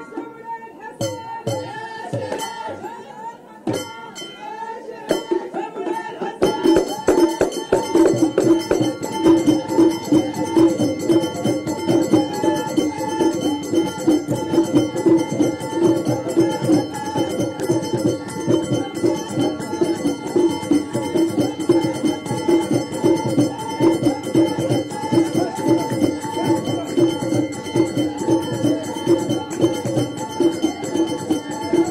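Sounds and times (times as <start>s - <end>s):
men chanting: 0.0s - 31.9s
voices: 0.0s - 31.9s
hand drums fast rhythm: 5.1s - 31.9s.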